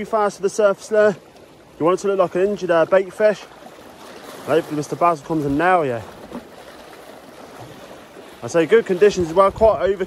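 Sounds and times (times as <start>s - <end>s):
waves splashing against rocks: 0.0s - 10.0s.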